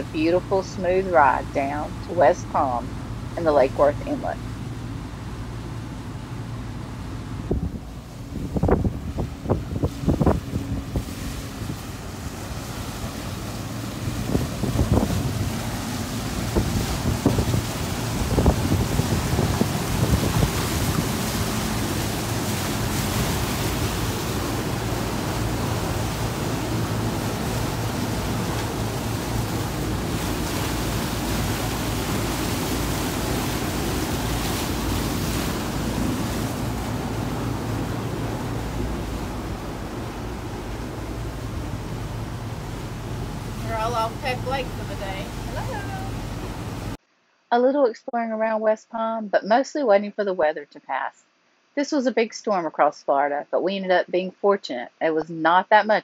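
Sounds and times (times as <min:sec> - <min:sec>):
low engine hum: 0:00.0 - 0:47.0
water rushing past hull: 0:00.0 - 0:47.0
wind buffeting microphone: 0:06.6 - 0:47.0.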